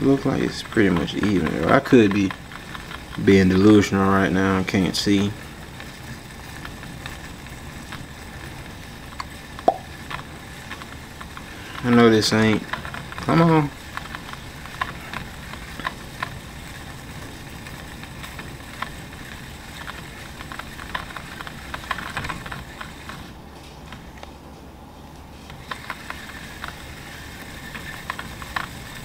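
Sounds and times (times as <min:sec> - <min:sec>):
light reel clicks: 0:00.0 - 0:23.3, 0:25.4 - 0:29.0.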